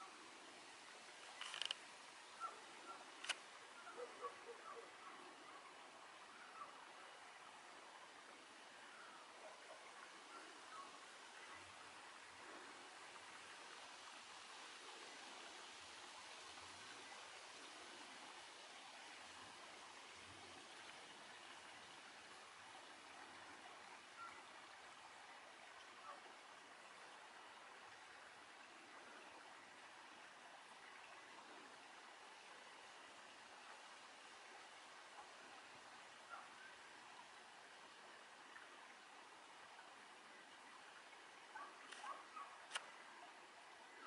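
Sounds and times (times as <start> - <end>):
running water rushing: 0.0 - 44.0
small clicks: 1.2 - 1.8, 3.2 - 3.5, 42.7 - 42.9.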